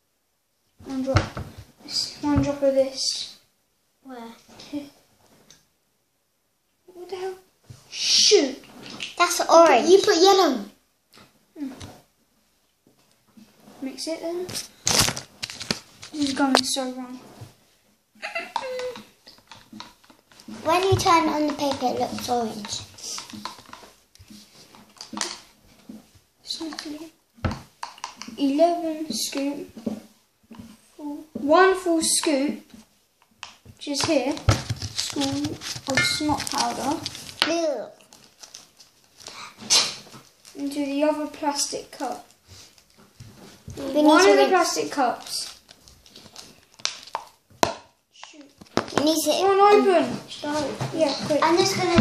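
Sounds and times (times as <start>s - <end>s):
quiet child's voice: 4.0s - 5.0s, 11.6s - 11.9s
plastic cups set on table: 18.5s - 26.0s, 26.7s - 28.4s, 32.8s - 38.3s
stick stirring liquid in cup: 18.6s - 25.3s.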